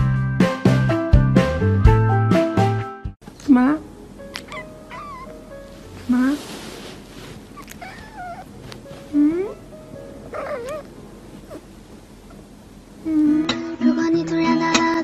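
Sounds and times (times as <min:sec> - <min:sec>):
cat meowing: 0:04.3 - 0:05.4, 0:07.6 - 0:08.6, 0:10.3 - 0:10.9.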